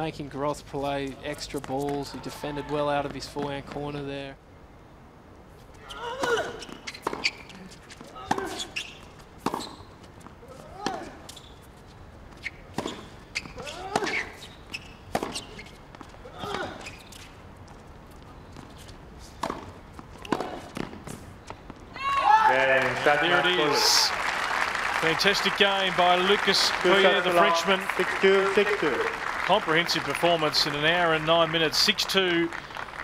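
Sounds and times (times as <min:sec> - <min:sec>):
tennis ball hit by rackets: 0:08.1 - 0:08.7, 0:09.4 - 0:09.8, 0:15.1 - 0:15.6, 0:19.4 - 0:21.2
applause and cheering: 0:22.5 - 0:33.0.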